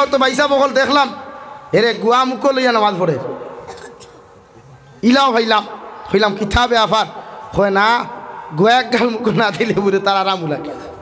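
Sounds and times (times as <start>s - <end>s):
man speaking over pa system: 0.0s - 3.8s, 5.0s - 11.0s.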